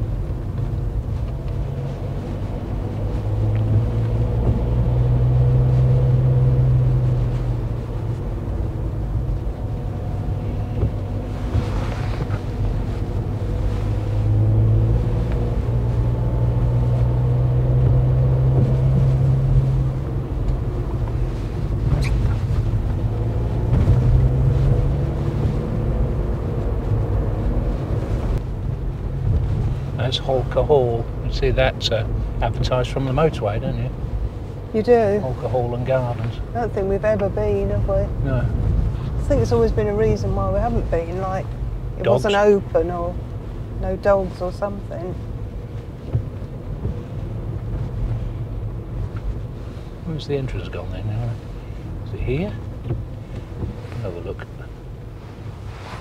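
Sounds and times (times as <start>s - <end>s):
car engine accelerating: 0.0s - 56.0s
tyre noise on wet road: 0.0s - 56.0s.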